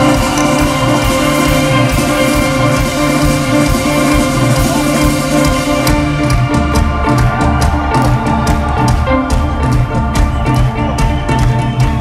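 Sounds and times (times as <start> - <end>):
drums striking: 0.0 - 12.0
live rock band playing: 0.0 - 12.0.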